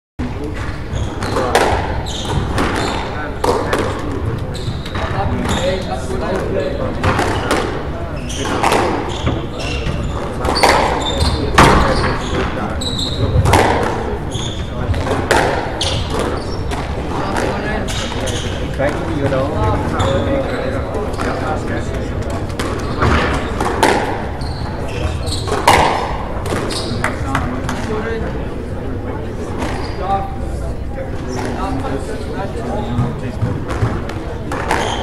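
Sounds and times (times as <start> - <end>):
voices chattering: 0.2 - 35.0
shoes squeaking on wooden floor: 0.8 - 3.5, 4.4 - 6.1, 8.1 - 13.6, 14.2 - 15.2, 15.8 - 18.7, 19.6 - 21.4, 22.4 - 25.9, 34.7 - 35.0
squash ball hitting walls: 1.1 - 4.2, 7.0 - 7.8, 8.4 - 12.6, 13.2 - 18.4, 22.5 - 24.3, 25.5 - 28.0, 33.0 - 35.0.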